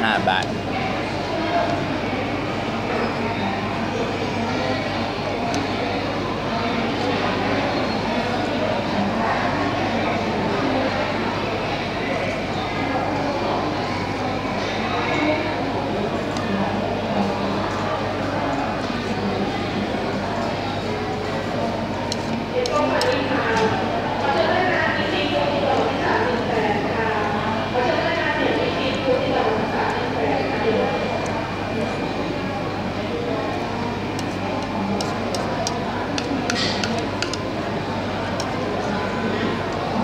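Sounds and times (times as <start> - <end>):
chatter of many people: 0.0 - 40.0.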